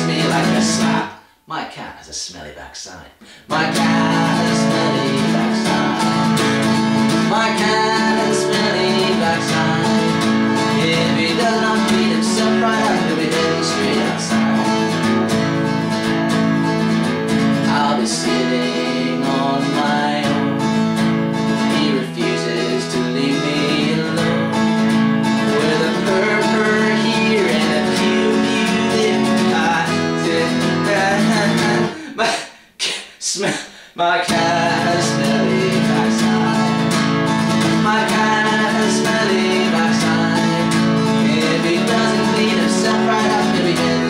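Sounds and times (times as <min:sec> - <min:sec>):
acoustic guitar strumming chords: 0:00.0 - 0:01.2, 0:03.5 - 0:32.3, 0:34.2 - 0:44.0.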